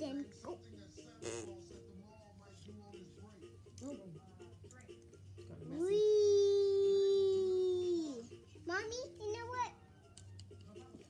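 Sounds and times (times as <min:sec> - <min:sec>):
faint background voices: 0:00.0 - 0:08.4.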